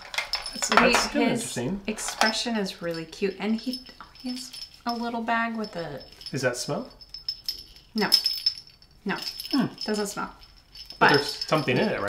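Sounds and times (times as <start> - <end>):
small jingle bell tinkling: 0.0 - 12.0.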